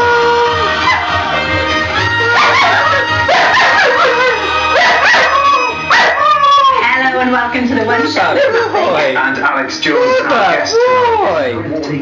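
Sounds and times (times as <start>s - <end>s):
dog howling: 0.0s - 7.0s, 9.9s - 11.5s
tv theme music: 0.0s - 12.0s.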